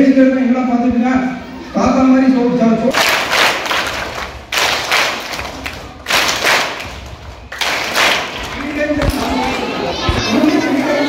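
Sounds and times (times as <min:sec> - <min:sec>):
crowd clapping in unison: 0:02.9 - 0:09.6.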